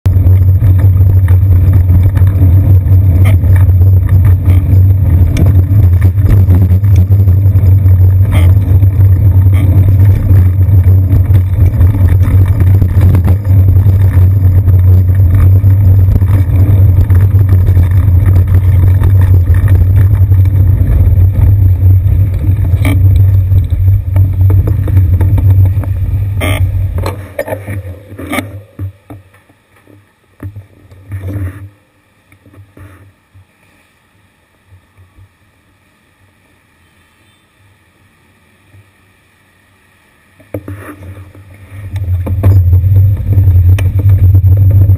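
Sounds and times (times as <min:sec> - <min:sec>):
wind and road rumble: 0:00.0 - 0:33.5, 0:40.4 - 0:44.9
sharp knocks from road bumps: 0:40.5 - 0:44.9.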